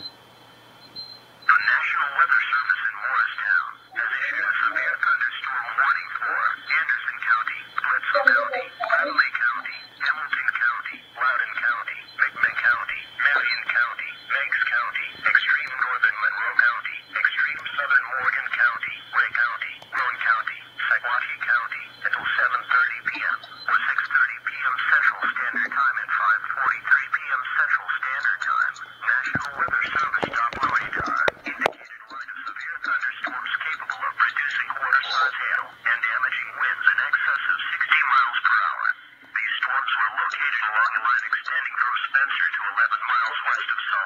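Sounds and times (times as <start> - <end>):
steady low hum: 0.0 - 44.0
broadcast voice through small speaker: 1.5 - 44.0.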